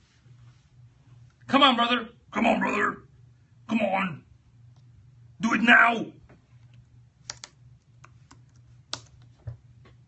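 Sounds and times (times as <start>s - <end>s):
low steady hum: 0.0s - 10.0s
computer keyboard keystrokes: 7.2s - 9.3s.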